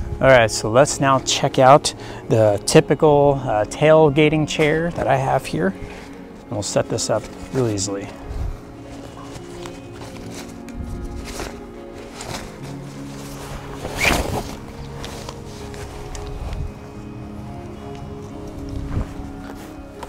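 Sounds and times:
background music with held notes: 0.0 - 20.0
folding chair rustling and clattering: 2.5 - 20.0.

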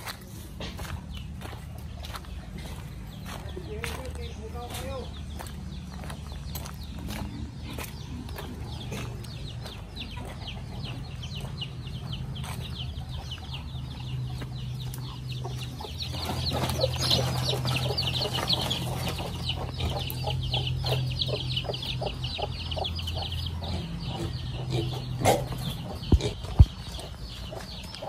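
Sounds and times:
chickens clucking: 0.0 - 28.0.

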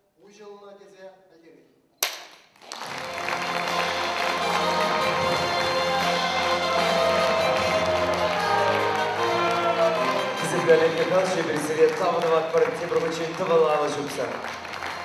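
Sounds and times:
loud music: 2.9 - 13.2.

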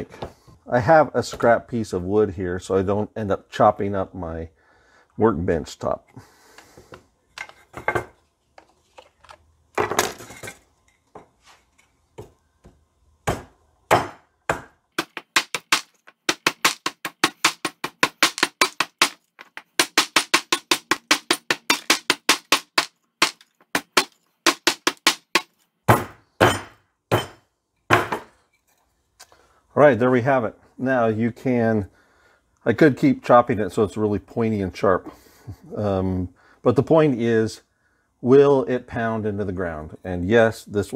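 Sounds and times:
hatchet chopping wood: 13.2 - 28.3.

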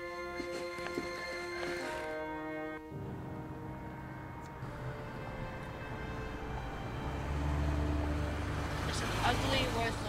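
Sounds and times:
road traffic rumbling: 0.0 - 10.0
vehicle passing: 3.2 - 10.0.

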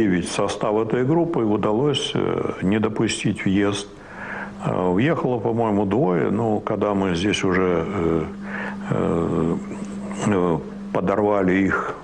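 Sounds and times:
elderly man speaking: 0.0 - 12.0.

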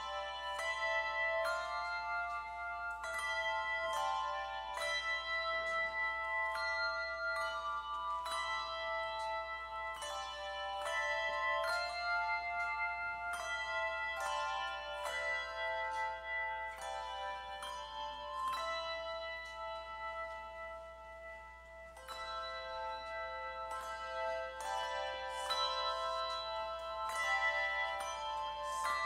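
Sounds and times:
handbell choir playing hymn: 0.0 - 29.0.

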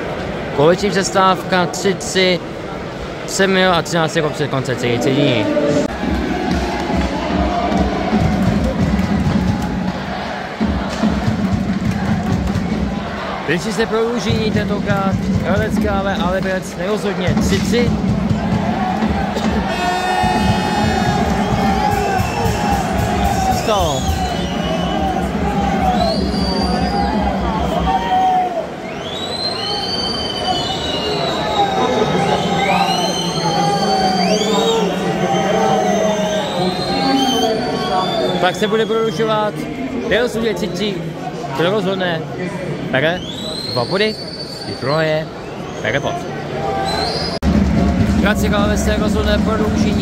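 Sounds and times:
large crowd noise: 0.0 - 50.0
shrill whistles from spectators: 19.7 - 39.3, 43.1 - 47.4.

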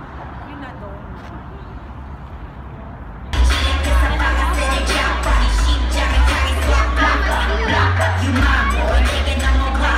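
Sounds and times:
crowd in a hall: 3.3 - 9.9
loud concert music over speakers: 3.3 - 9.9.

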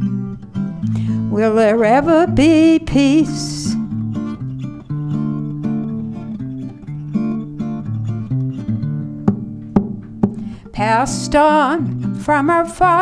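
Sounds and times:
acoustic guitar plucking: 0.0 - 13.0.

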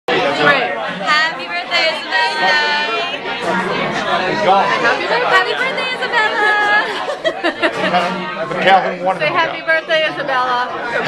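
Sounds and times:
people chattering: 0.1 - 11.0.

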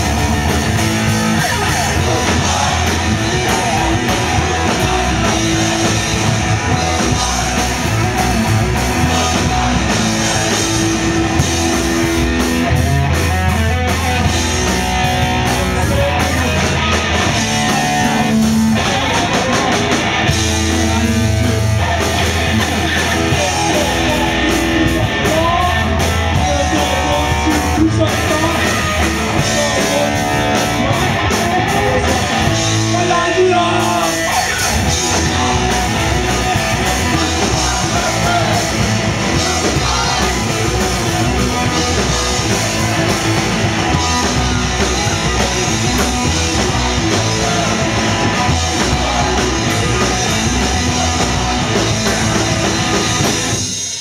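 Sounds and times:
bass guitar: 0.0 - 54.0
distorted electric guitar: 0.0 - 54.0
drum kit: 0.0 - 54.0
person singing: 1.2 - 12.0, 22.8 - 52.4.

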